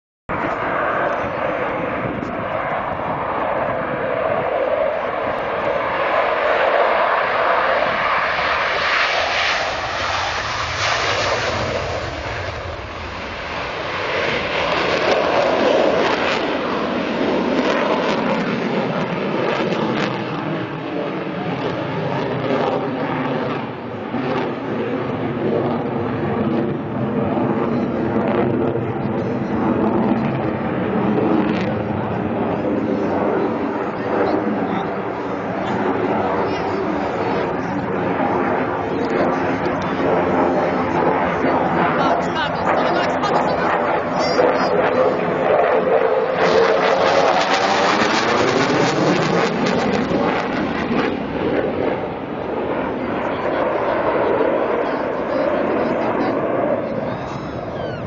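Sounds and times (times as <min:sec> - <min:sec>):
jet engine roar: 0:00.3 - 0:58.0
steady whining tones: 0:27.7 - 0:58.0.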